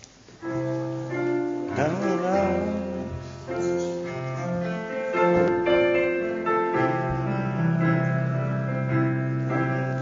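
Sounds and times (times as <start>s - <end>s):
piano playing hymn chords: 0.4s - 10.0s.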